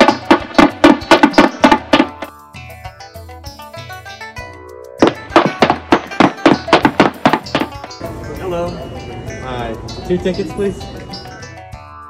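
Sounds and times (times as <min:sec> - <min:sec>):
running footsteps: 0:05.0 - 0:08.0.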